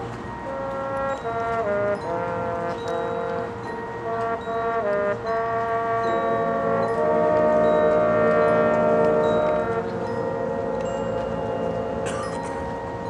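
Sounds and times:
brass holding sustained chords: 0.0s - 13.0s
chime-like mallet percussion: 0.0s - 13.0s.

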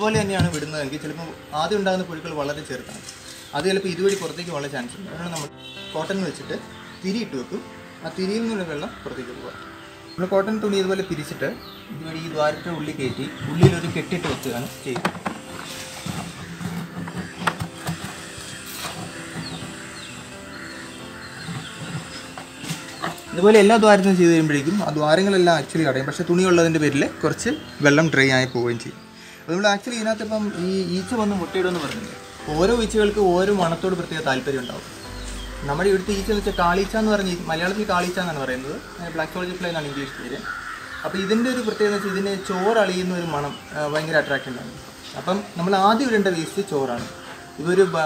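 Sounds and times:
crow cawing: 7.6s - 10.1s, 16.3s - 23.1s, 38.4s - 43.1s
hands knocking in plastic bucket: 13.4s - 14.0s.

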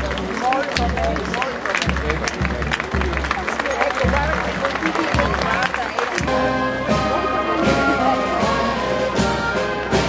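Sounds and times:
marching footsteps: 0.0s - 10.0s
spectators talking: 0.0s - 10.0s.

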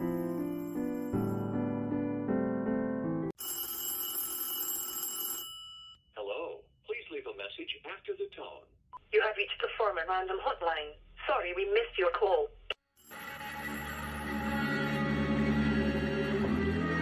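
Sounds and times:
keyboard music: 0.0s - 3.4s, 13.1s - 17.0s
telephone ringing: 3.4s - 6.0s
person speaking over phone line: 6.2s - 12.5s.

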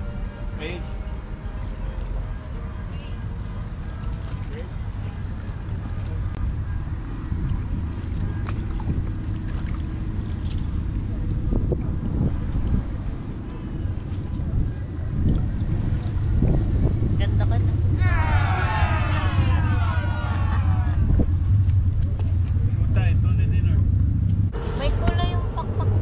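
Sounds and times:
wind buffeting microphone: 5.7s - 26.0s.

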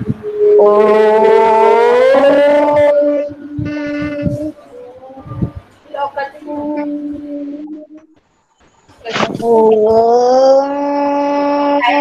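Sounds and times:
voices chanting om: 0.0s - 8.2s.

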